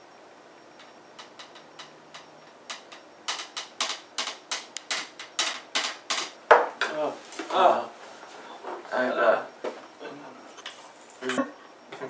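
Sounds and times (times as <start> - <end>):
stick tapping on tin cans: 1.2 - 6.4.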